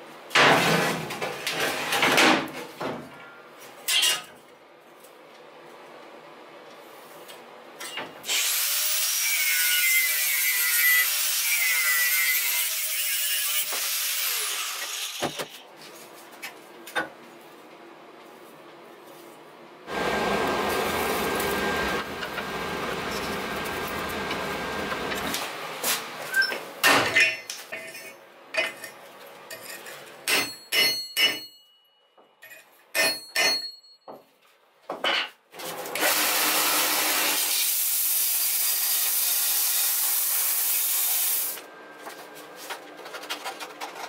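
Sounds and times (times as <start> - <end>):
forge fire rushing with whine: 19.9 - 25.5.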